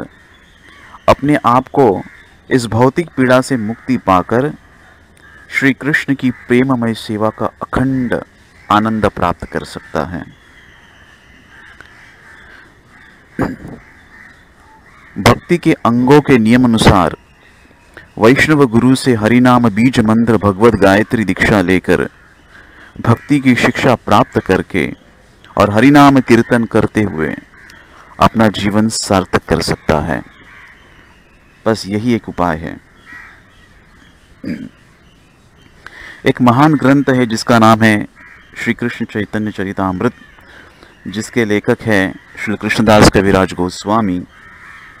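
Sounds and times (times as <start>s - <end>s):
distant bird calls: 0.0s - 45.0s
low background noise: 0.0s - 45.0s.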